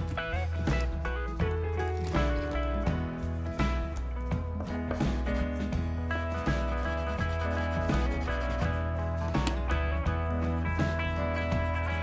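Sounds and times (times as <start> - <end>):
background music: 0.0 - 12.0
pastel stick rubbing on paper: 0.7 - 2.6, 4.7 - 12.0.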